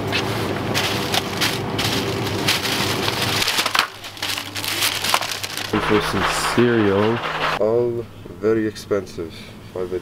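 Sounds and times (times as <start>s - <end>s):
paper bags rustling: 0.2s - 7.6s
steady low hum: 5.5s - 8.2s.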